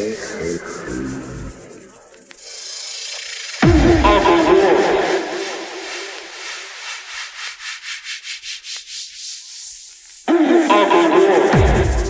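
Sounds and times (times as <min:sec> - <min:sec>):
pulsing hissing synth noise: 0:00.0 - 0:07.8.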